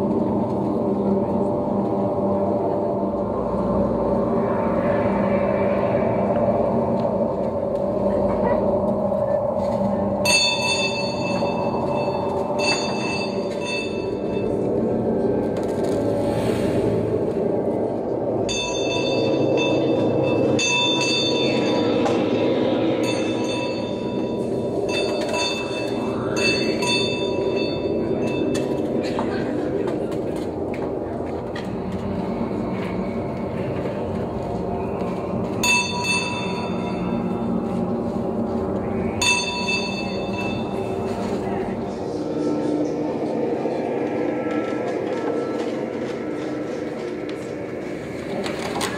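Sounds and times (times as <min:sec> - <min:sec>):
dense droning rumble: 0:00.0 - 0:48.9
high bell-like ringing: 0:10.2 - 0:14.7, 0:18.4 - 0:28.8, 0:35.6 - 0:37.5, 0:39.1 - 0:41.4.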